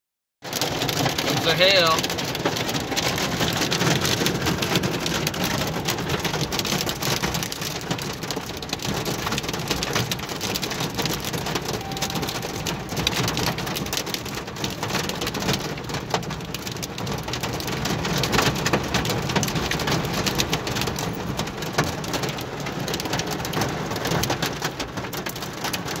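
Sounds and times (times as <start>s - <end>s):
hail and rain on car roof: 0.4s - 26.0s.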